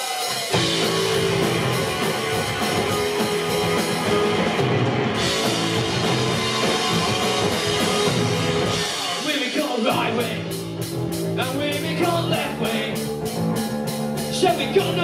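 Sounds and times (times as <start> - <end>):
bass guitar: 0.0 - 15.0
distorted electric guitar: 0.0 - 15.0
drum kit: 0.0 - 15.0.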